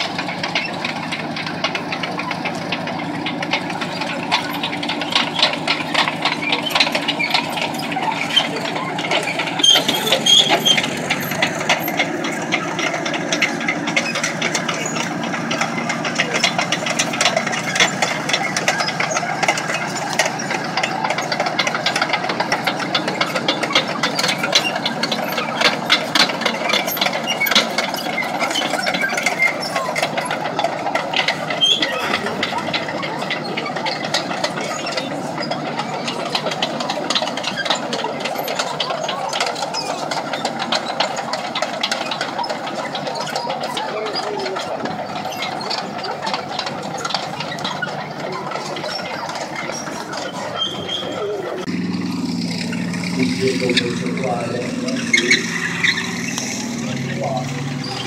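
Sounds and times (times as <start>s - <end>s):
steel tracks clattering: 0.0s - 58.0s
tank diesel engine running: 0.0s - 58.0s.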